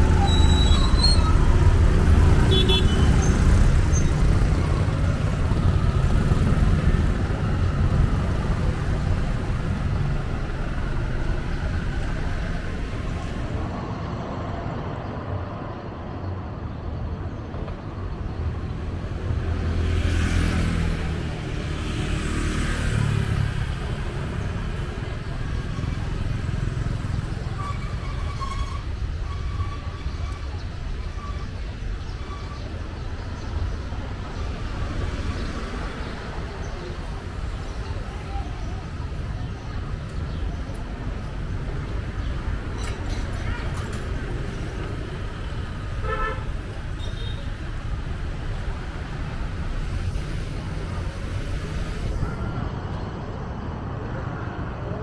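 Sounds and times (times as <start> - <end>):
steady low traffic rumble: 0.0 - 21.8
motorbikes and cars passing: 0.0 - 55.0.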